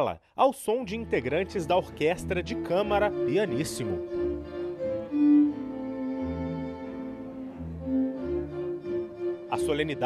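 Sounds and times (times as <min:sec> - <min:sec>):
string ensemble playing legato: 0:00.8 - 0:10.0.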